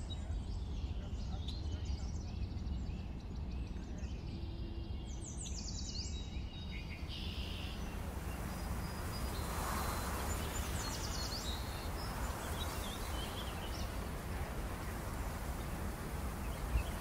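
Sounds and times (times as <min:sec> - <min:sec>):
small birds chirping: 0:00.0 - 0:17.0.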